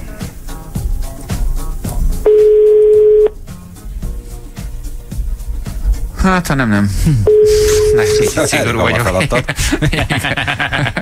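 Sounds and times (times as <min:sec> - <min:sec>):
quiet background music: 0:00.0 - 0:09.7
telephone ringback beep: 0:02.3 - 0:03.4, 0:07.3 - 0:08.2.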